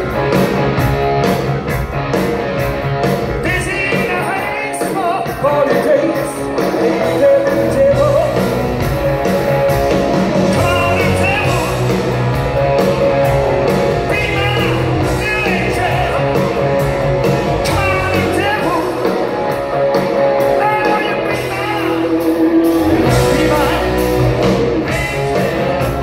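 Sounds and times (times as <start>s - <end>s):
live rock band: 0.0s - 26.0s
man singing: 3.4s - 8.6s, 10.5s - 12.0s, 14.0s - 16.6s, 17.4s - 19.3s, 20.4s - 24.2s.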